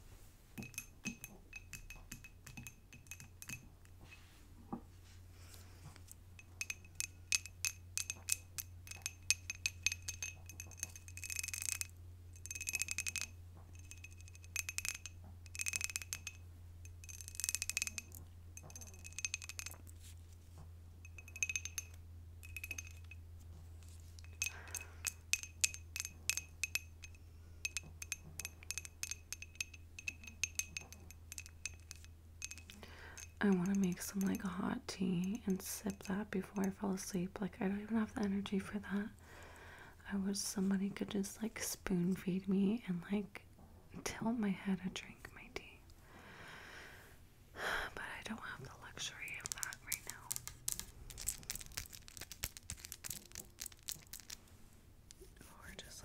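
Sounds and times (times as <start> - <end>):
fingernails tapping on glass jar: 0.6 - 4.2, 6.4 - 20.1, 21.0 - 23.2, 24.2 - 34.5, 49.1 - 54.4.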